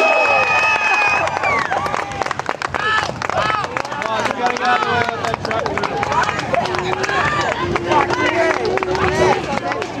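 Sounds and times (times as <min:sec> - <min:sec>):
crowd chattering and calling out: 0:01.2 - 0:10.0.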